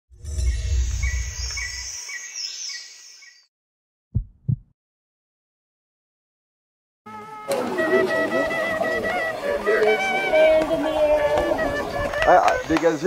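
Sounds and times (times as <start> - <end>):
loud low rumble: 0.1 - 1.9
sharp low thumps: 4.1 - 4.7.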